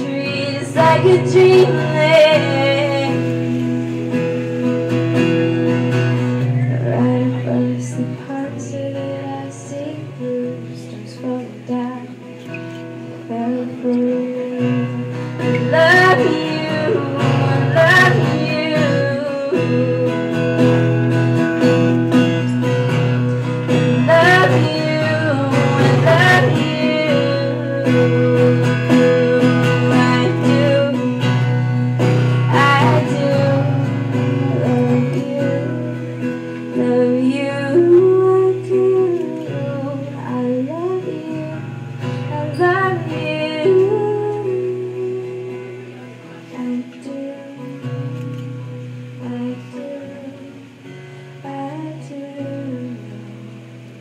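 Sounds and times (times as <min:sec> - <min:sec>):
acoustic guitar: 0:00.0 - 0:54.0
woman singing slow song: 0:00.0 - 0:54.0.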